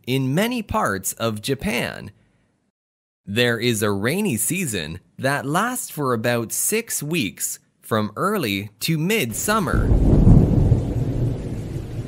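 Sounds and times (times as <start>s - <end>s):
steady rain: 9.3s - 12.0s
deep rumble of thunder: 9.4s - 12.0s.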